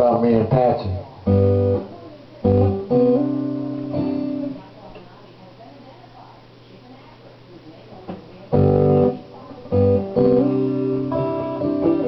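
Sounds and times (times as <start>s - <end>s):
acoustic guitar chords strummed: 1.2s - 4.6s, 8.5s - 12.0s.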